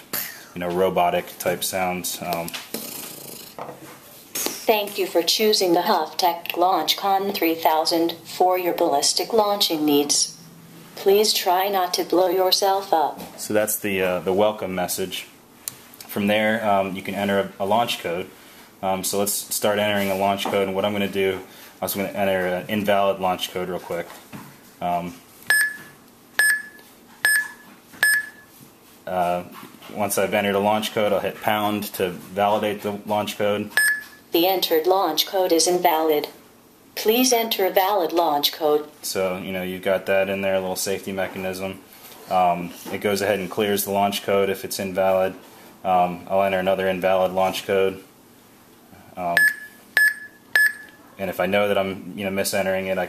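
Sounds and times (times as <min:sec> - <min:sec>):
short high beeps: 0:25.5 - 0:28.5, 0:33.8 - 0:34.2, 0:49.4 - 0:51.0.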